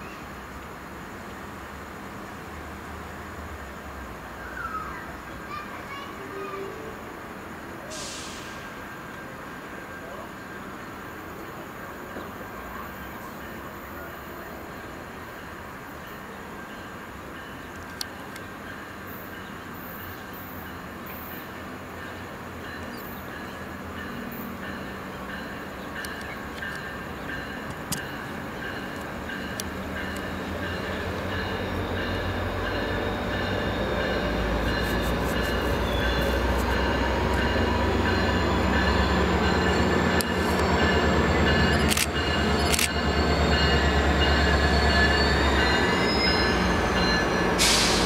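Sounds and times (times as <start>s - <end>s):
locomotive engine drone: 6.3s - 48.0s
wheel squeal on rails: 31.6s - 48.0s.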